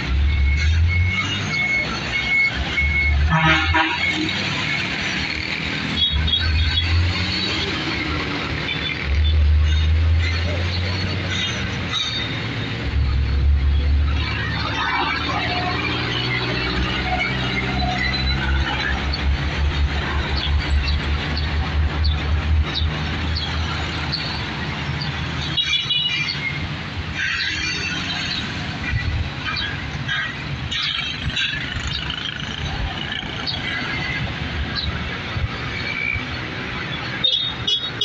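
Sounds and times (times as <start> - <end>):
vehicle engines rumbling: 0.0 - 38.0.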